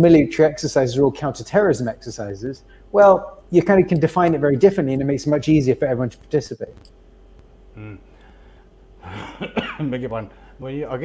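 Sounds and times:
man clearing throat: 0:09.0 - 0:10.0.

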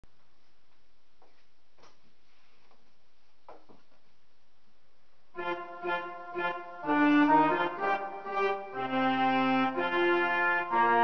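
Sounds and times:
reedy organ notes: 0:05.4 - 0:11.0.

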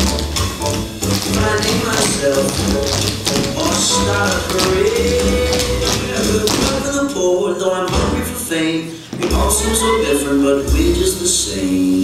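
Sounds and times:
tap shoes tapping on stage: 0:00.0 - 0:08.4, 0:09.1 - 0:09.7
recorded pop song: 0:00.0 - 0:12.0.

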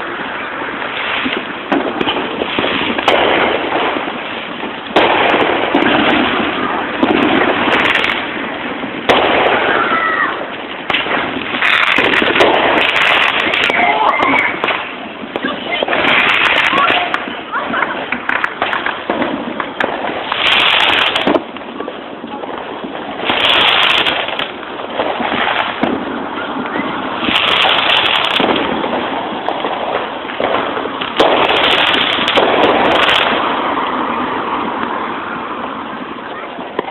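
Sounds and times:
fireworks bangs: 0:00.0 - 0:36.9
fireworks crackling pops: 0:00.0 - 0:36.9.

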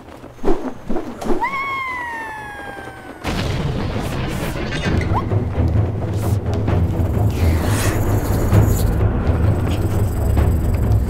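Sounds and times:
loud boom: 0:03.2 - 0:05.2
dramatic music with deep rumble: 0:03.3 - 0:11.0.

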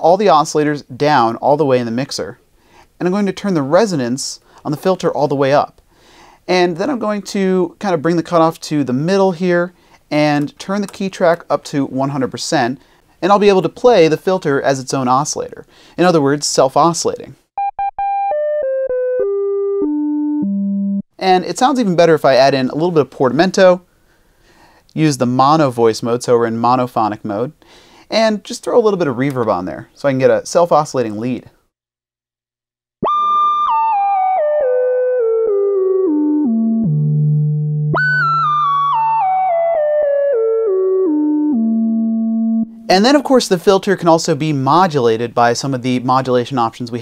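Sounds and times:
synthesizer tone stepping down notes: 0:17.6 - 0:21.0, 0:33.0 - 0:42.9.

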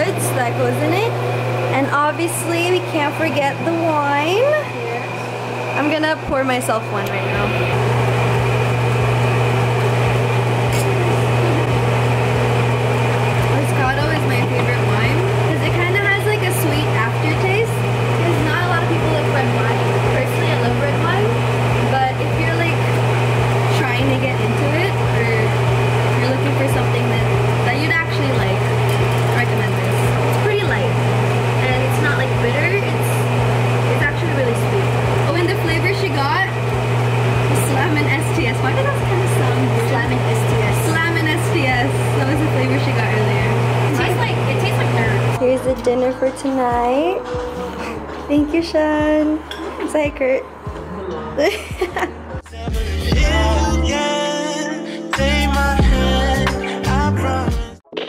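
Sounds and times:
range hood fan humming: 0:00.0 - 0:54.2
women talking indistinctly: 0:13.4 - 0:36.7, 0:37.4 - 0:52.1.

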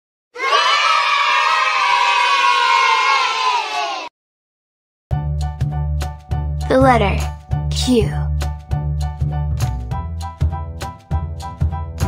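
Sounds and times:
children cheering in a long shout: 0:00.4 - 0:04.1.

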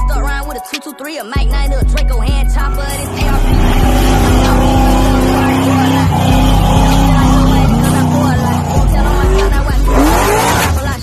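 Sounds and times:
steady bass beat: 0:00.0 - 0:00.6, 0:01.4 - 0:10.8
car engine revving hard: 0:02.8 - 0:11.0.

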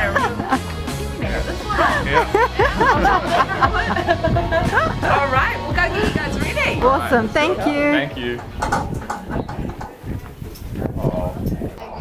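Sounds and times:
short knocks: 0:08.4 - 0:10.0.

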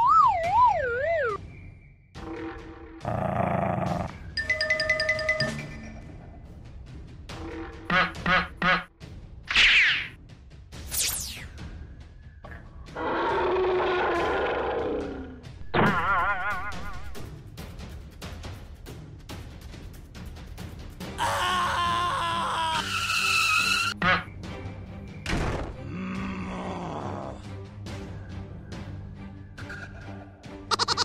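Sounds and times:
cartoon duck quacks: 0:07.9 - 0:08.9, 0:24.0 - 0:24.3, 0:30.7 - 0:31.0
cartoon screech: 0:21.2 - 0:24.0.

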